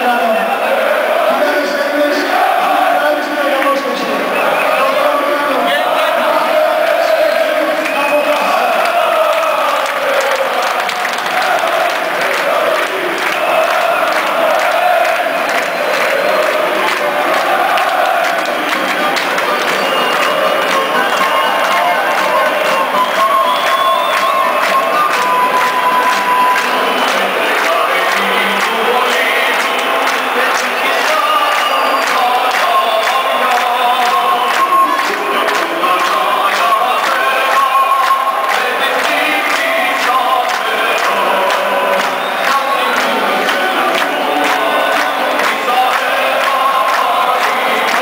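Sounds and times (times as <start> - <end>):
crowd singing and chanting: 0.0 - 48.0.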